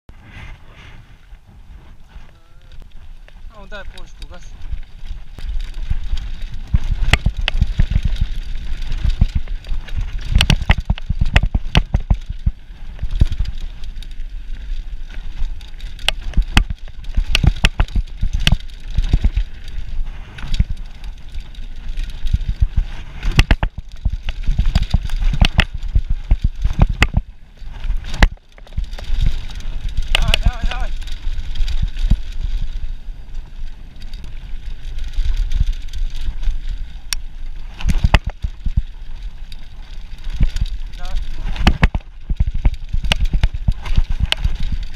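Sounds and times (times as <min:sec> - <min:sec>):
tyre and air rush: 0:00.1 - 0:02.4
bike knocks and rattles: 0:04.6 - 0:32.9, 0:34.0 - 0:44.9.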